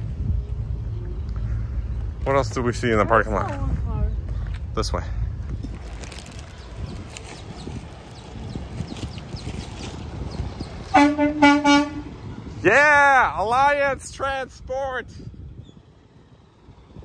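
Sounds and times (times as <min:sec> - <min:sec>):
truck rumbling: 0:00.0 - 0:17.0
truck horn tooting: 0:10.9 - 0:12.4.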